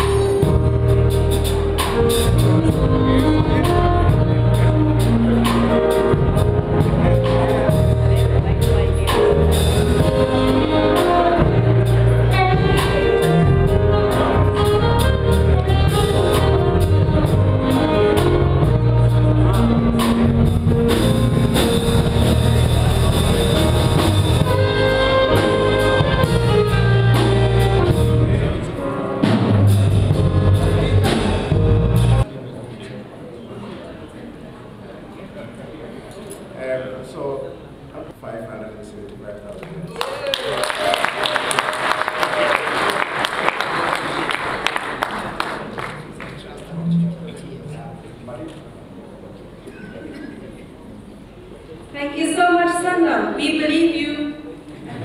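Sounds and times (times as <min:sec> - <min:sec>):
saxophone holding notes: 0:00.0 - 0:32.2
steady bass: 0:00.0 - 0:32.3
murmur of voices: 0:00.0 - 0:55.0.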